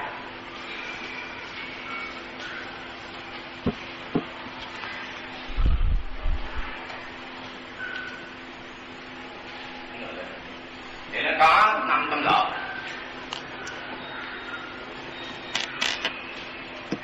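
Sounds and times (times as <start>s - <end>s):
sound system hum and hiss: 0.0s - 17.0s.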